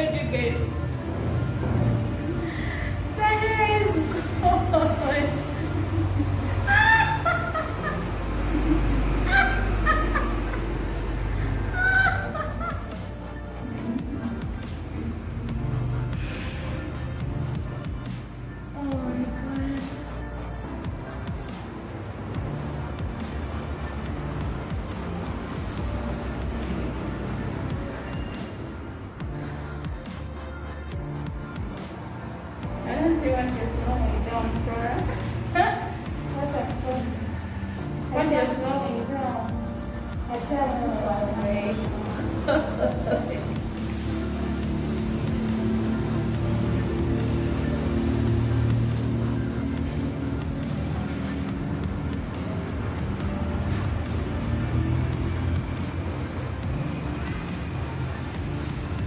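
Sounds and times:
woman squealing excitedly: 6.7 - 7.6, 11.7 - 12.5.

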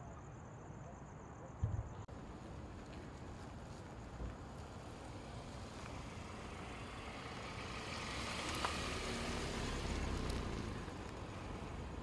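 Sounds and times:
vehicle passing by: 5.2 - 12.0.

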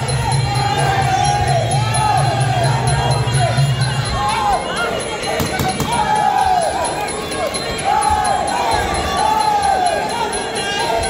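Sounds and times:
crowd shouting: 0.0 - 11.0.

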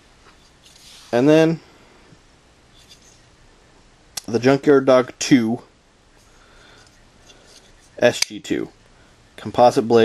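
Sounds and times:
room hiss: 0.0 - 10.0
soft knife handling noises: 2.7 - 3.2, 6.2 - 8.5.

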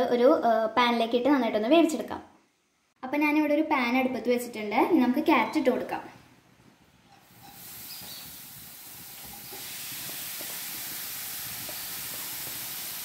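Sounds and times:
carrot sizzling in hot fat: 7.2 - 13.0.

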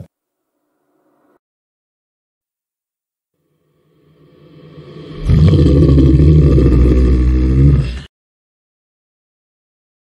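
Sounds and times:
reversed bass-heavy sound effect: 3.5 - 7.7.

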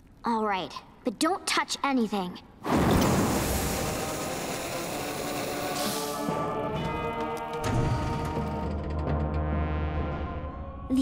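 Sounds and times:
cartoon flame rush: 2.6 - 6.2.

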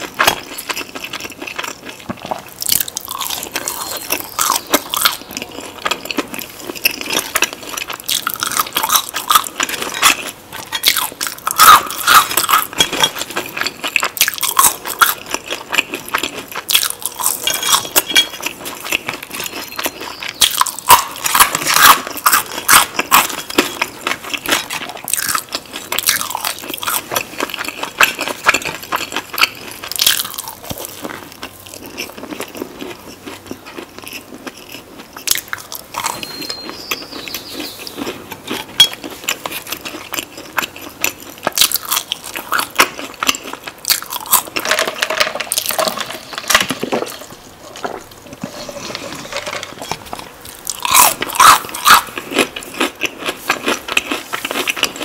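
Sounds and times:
chewing and crunching fried food: 0.0 - 55.0.

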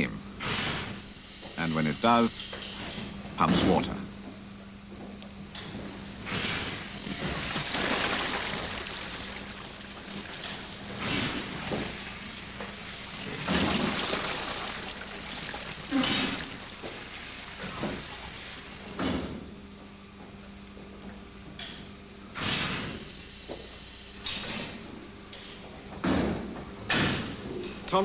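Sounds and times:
water gushing into trough: 6.2 - 19.0.

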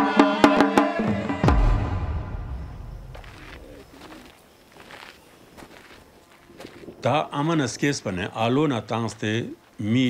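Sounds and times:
footsteps on stony dirt path: 2.6 - 10.0.

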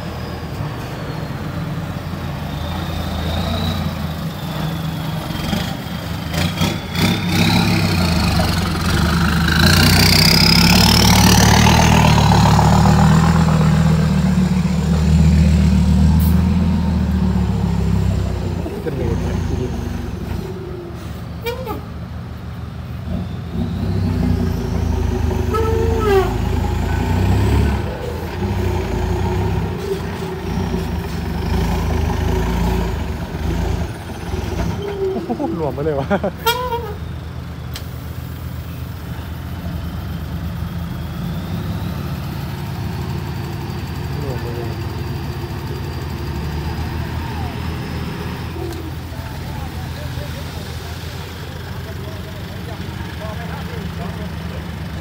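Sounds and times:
diesel truck engines revving: 0.0 - 55.0.

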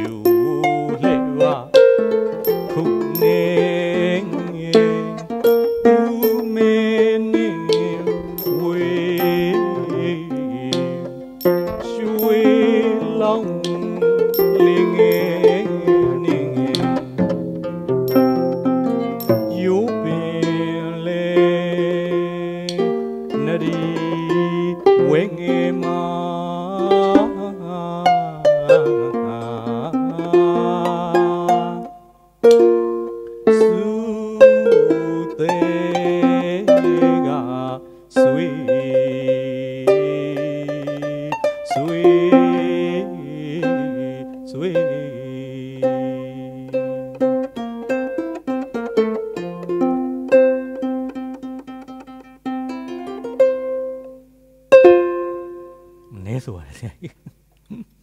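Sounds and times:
man singing: 0.0 - 17.3, 18.1 - 32.0, 33.4 - 47.2
plucked harp: 0.0 - 56.2
hand cymbals and clapper: 11.4 - 12.4, 18.1 - 18.6, 19.2 - 19.7.

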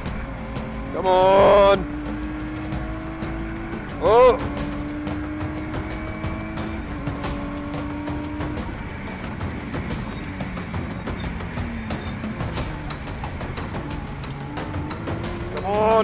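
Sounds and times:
race car engine running hard: 0.0 - 16.0.

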